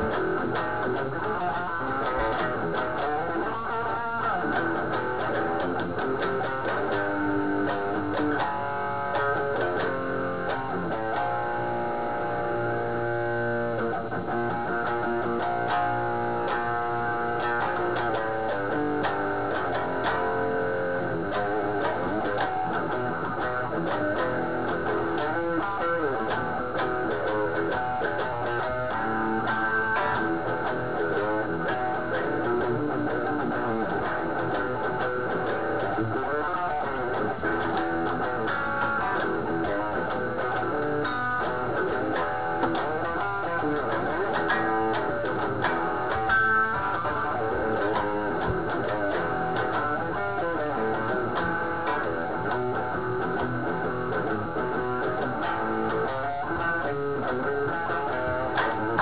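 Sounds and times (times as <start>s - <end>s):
amplified electric guitar riffs: 0.0s - 59.0s.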